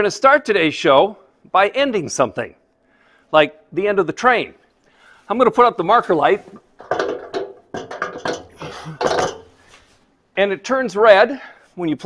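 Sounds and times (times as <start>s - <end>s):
metal clunks and scrapes: 6.4s - 10.0s.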